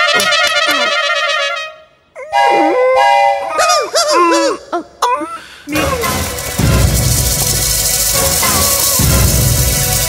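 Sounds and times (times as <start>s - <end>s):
wavering wail: 2.2s - 4.6s.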